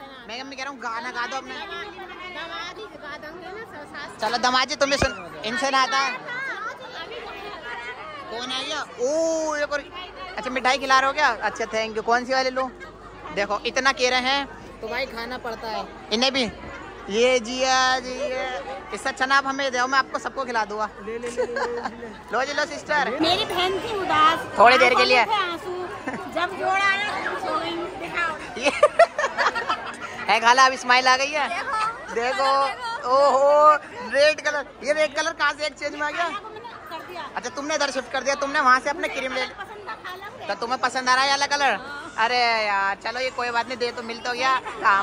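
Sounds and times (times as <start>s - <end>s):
indistinct chatter: 0.0s - 45.0s
several voices talking: 0.0s - 45.0s.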